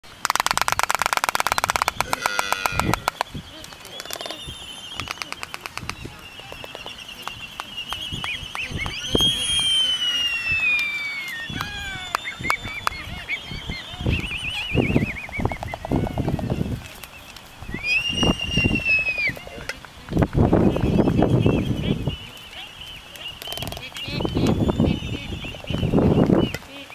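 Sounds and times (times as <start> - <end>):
albatross bill-clapping clatters: 0.0 - 4.4, 5.0 - 9.1, 10.8 - 13.6, 23.2 - 24.7
high whistling bird calls: 1.3 - 26.9.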